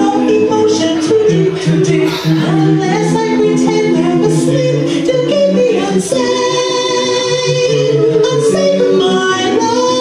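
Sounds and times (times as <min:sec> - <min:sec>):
backing music with bass line: 0:01.3 - 0:06.8
person singing long held notes: 0:01.9 - 0:08.0.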